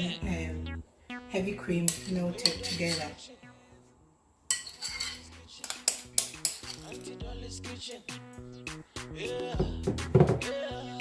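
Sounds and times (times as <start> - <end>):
spatula scraping a bowl: 1.9 - 3.2, 4.5 - 7.1.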